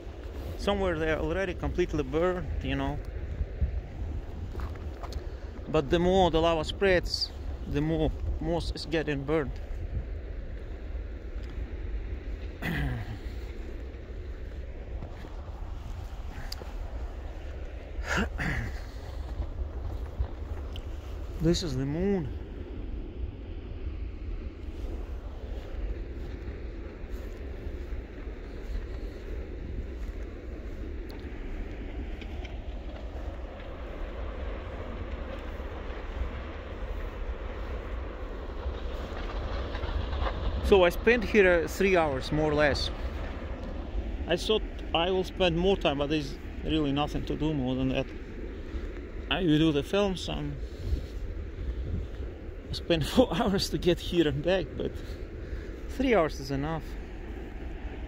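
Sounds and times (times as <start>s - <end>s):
lava fountain roaring: 0.0s - 58.0s
wind buffeting microphone: 0.0s - 58.0s
person murmuring: 12.6s - 13.3s, 18.0s - 18.8s.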